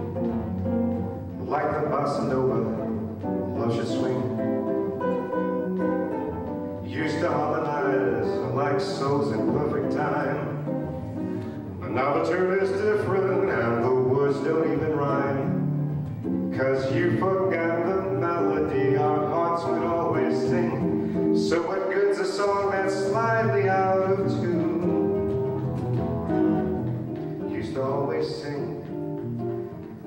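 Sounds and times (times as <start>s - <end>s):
acoustic guitar: 0.0s - 30.0s
man singing: 1.3s - 5.0s, 6.8s - 11.1s, 11.7s - 15.8s, 16.4s - 26.8s, 27.4s - 29.2s.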